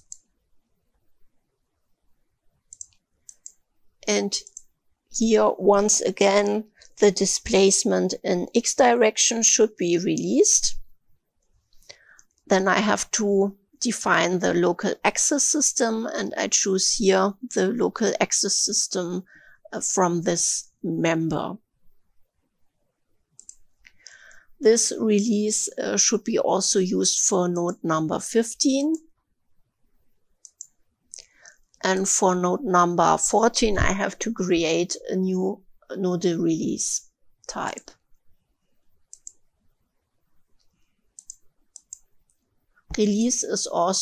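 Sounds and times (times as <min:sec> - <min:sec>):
computer mouse clicks: 0:00.0 - 0:00.4, 0:02.7 - 0:03.6, 0:04.4 - 0:04.7, 0:23.4 - 0:24.3, 0:30.4 - 0:31.4, 0:39.0 - 0:39.5, 0:40.6 - 0:42.4.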